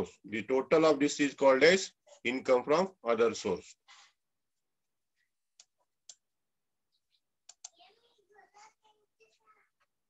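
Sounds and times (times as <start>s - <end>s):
computer mouse clicks: 7.4s - 7.8s.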